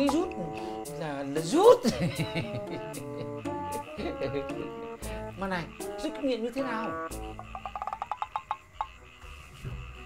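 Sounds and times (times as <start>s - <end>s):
faint background music: 0.0s - 10.0s
person giggling: 1.8s - 5.1s.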